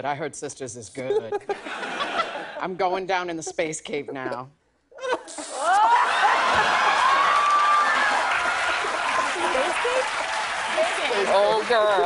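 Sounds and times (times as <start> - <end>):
audience laughing: 1.4 - 2.6, 5.2 - 10.4
whoops: 5.6 - 8.9
applause: 6.0 - 12.0.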